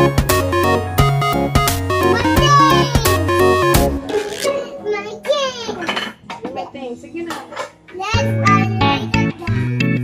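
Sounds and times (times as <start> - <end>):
child's high voice: 2.1 - 3.3, 4.6 - 6.0.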